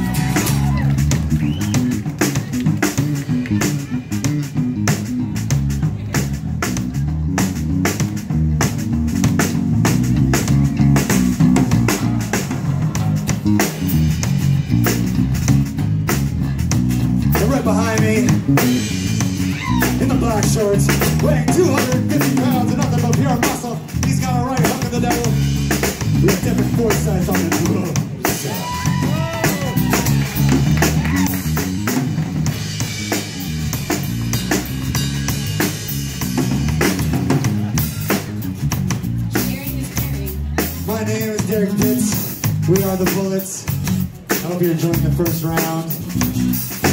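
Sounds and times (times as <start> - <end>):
live band instrumental groove: 0.0 - 46.9.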